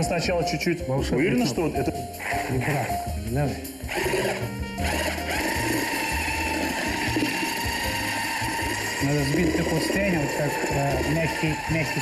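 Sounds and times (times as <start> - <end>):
electric mixer whining: 2.1 - 12.0.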